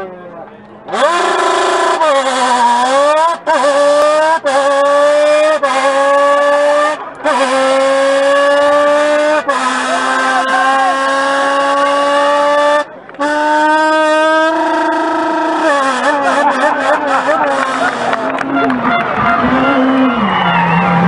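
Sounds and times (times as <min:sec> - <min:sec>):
man imitating car engine: 0:00.9 - 0:20.2.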